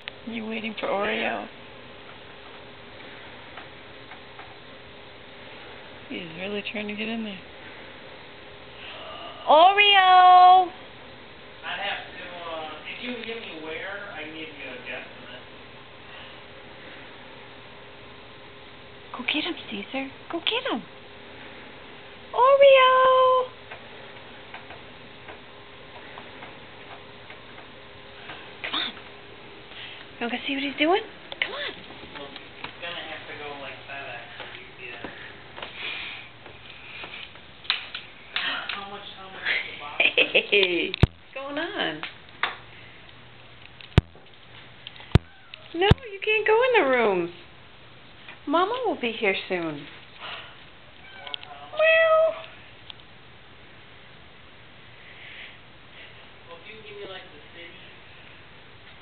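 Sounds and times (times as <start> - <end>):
low steady hum: 0.0 - 59.0
cat meowing: 45.2 - 45.7, 51.0 - 52.5.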